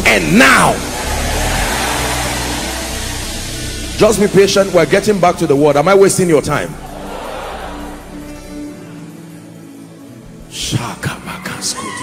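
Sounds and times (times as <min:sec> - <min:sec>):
steady hiss: 0:00.0 - 0:10.6
low sustained background chords: 0:00.0 - 0:11.6.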